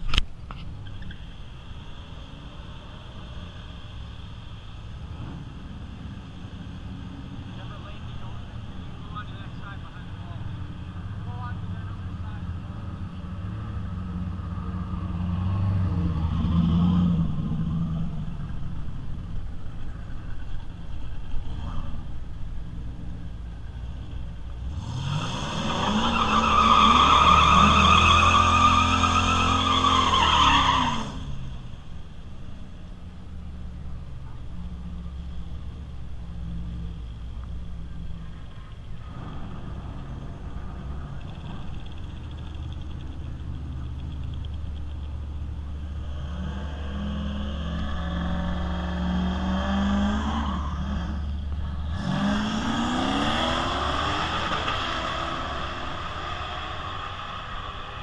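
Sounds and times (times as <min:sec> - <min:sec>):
drag car engine revving: 0:24.4 - 0:31.7, 0:38.3 - 0:58.0
tyres squealing: 0:25.6 - 0:31.4.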